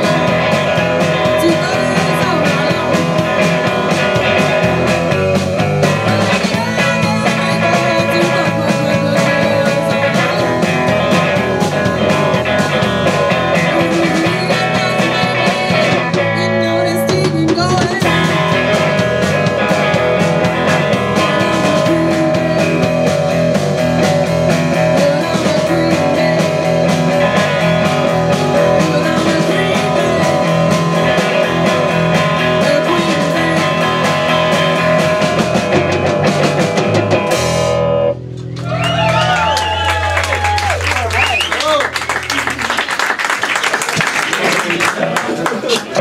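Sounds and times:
wavering gliding guitar tones: 0:00.0 - 0:38.8
beat group playing: 0:00.0 - 0:46.0.

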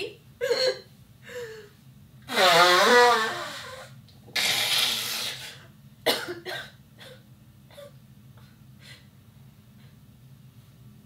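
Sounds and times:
woman blowing her nose: 0:02.3 - 0:05.7.

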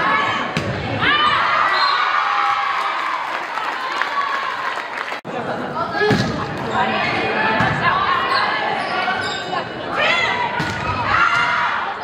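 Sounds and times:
players and spectators calling out: 0:05.4 - 0:12.0.

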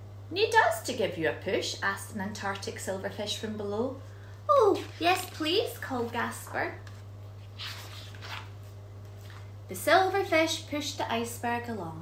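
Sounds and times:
steady low hum: 0:00.0 - 0:12.0
book page turning: 0:04.7 - 0:09.6.

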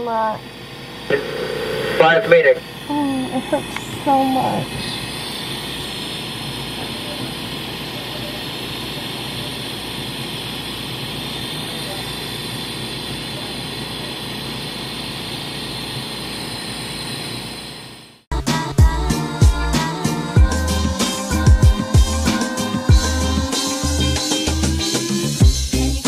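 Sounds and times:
rushing hiss of air: 0:18.5 - 0:26.0.

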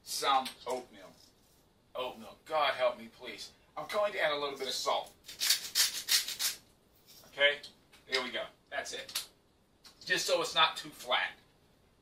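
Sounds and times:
salt grinder grinding: 0:05.3 - 0:06.6.

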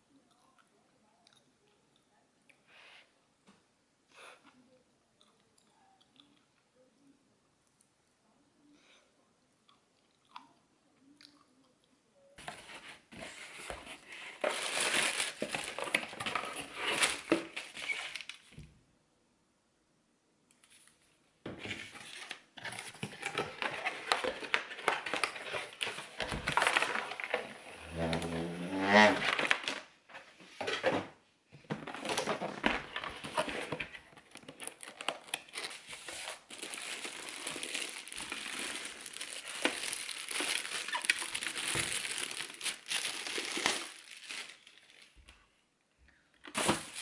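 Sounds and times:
plastic bags crinkling and rustling: 0:12.4 - 0:18.6, 0:21.5 - 0:45.4, 0:46.4 - 0:47.0.

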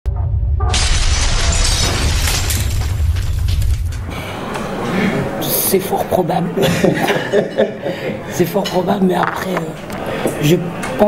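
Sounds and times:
deep boom and rumble: 0:00.0 - 0:04.2
shattering crash: 0:00.2 - 0:04.1.

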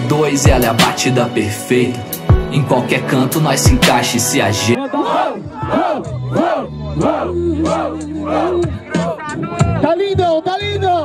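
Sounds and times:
host's voice through microphone: 0:00.0 - 0:05.8, 0:06.8 - 0:11.0
host and crowd chanting: 0:04.8 - 0:09.2.

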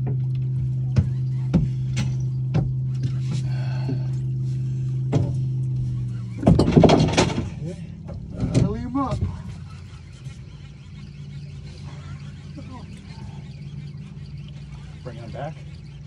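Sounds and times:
low motor hum: 0:00.0 - 0:16.0.

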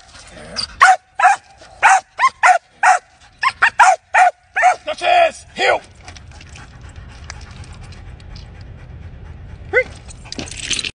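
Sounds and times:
dog yelping: 0:00.6 - 0:04.9
dog panting: 0:05.9 - 0:10.7.

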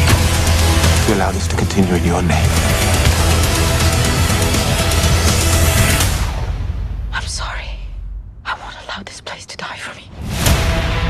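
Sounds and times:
faint low rumble: 0:03.8 - 0:10.1
person whispering: 0:07.1 - 0:10.2.

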